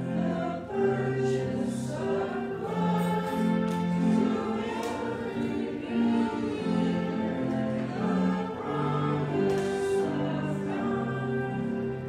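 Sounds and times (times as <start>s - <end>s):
choir singing slow chords: 0.0s - 12.0s.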